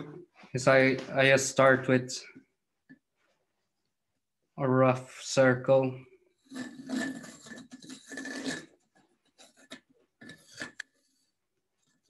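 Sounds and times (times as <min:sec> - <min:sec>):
steel point scratching wood: 0:06.4 - 0:12.0.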